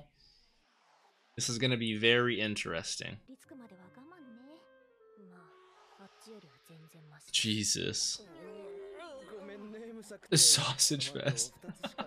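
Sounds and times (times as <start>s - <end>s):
soft background music: 1.4s - 12.0s
character's voice speaking: 10.3s - 11.6s.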